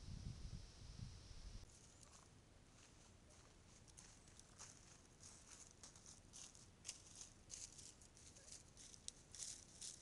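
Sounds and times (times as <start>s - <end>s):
turkeys rustling dry leaves: 2.8s - 10.0s.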